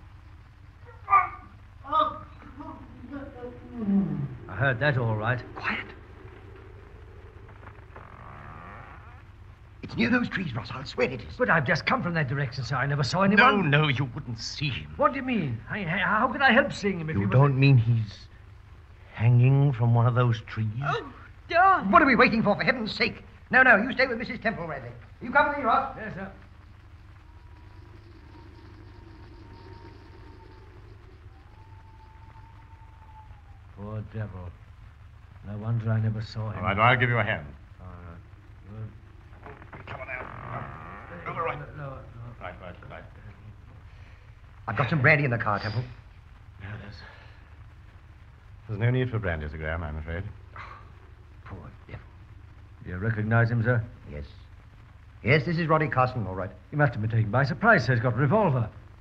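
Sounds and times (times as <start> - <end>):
steady low hum: 0.0 - 59.0
faint wavering sound: 2.2 - 9.7, 26.4 - 34.2.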